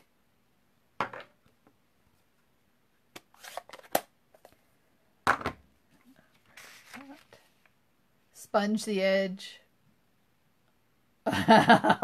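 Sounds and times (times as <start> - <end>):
paper rustling: 6.3 - 7.6.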